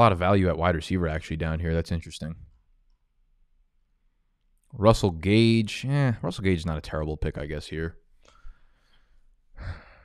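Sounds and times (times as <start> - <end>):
faint breath: 8.2 - 10.0
man sighing: 9.6 - 10.0.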